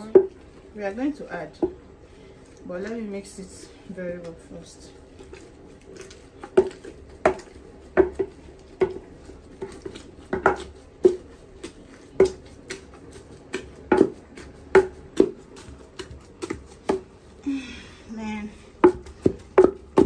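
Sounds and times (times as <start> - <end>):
pestle pounding in wooden mortar: 0.0 - 0.4, 1.4 - 1.8, 4.2 - 17.4, 18.6 - 20.0.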